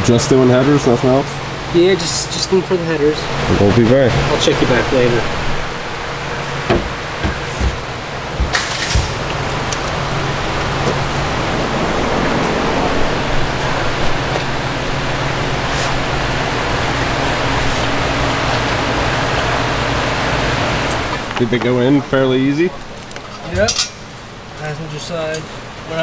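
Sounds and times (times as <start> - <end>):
steady rushing noise with hum: 0.0 - 22.8.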